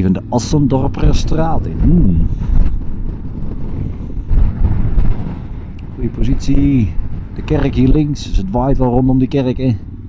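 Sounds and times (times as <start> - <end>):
road noise: 0.0 - 10.0
wind buffeting microphone: 0.0 - 10.0.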